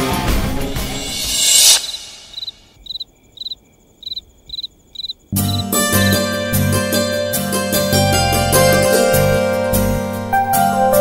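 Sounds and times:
cricket chirping: 1.1s - 5.8s.

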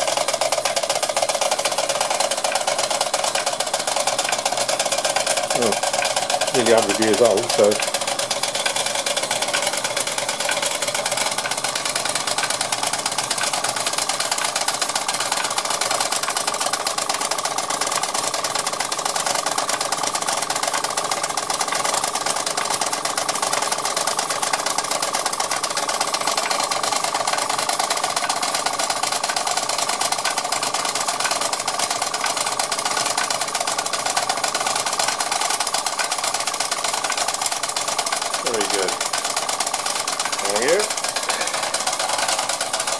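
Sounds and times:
model steam engine clatter: 0.0s - 42.9s.

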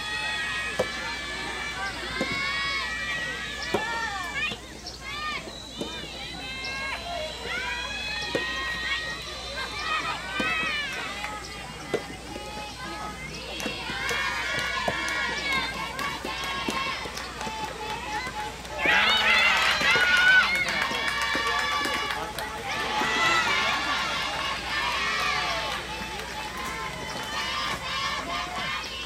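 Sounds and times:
girls shouting cheers: 6.3s - 29.0s.

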